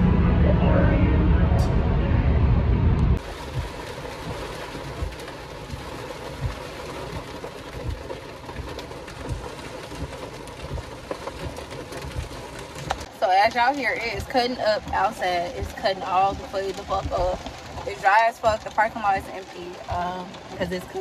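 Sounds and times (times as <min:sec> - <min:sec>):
low road rumble: 0:00.0 - 0:21.0
rain on a car roof: 0:03.1 - 0:21.0.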